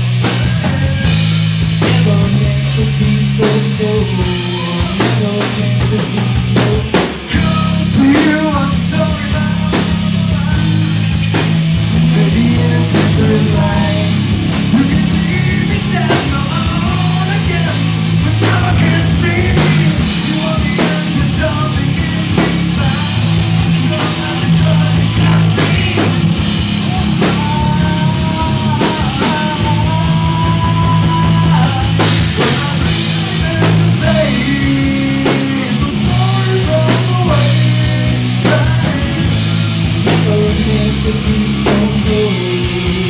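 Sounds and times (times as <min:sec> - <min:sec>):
live rock band playing: 0:00.0 - 0:43.0
person singing: 0:00.0 - 0:43.0.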